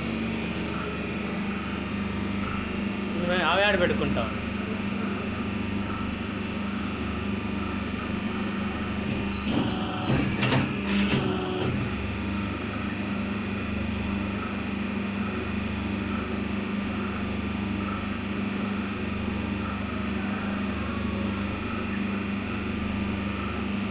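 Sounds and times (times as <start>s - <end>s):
machine motor hum: 0.0s - 23.8s
knocks and clatter: 9.0s - 11.9s.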